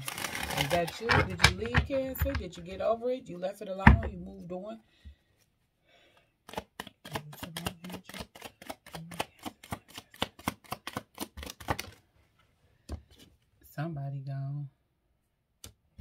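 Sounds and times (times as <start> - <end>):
cards being shuffled: 0.0 - 2.5, 6.4 - 12.1.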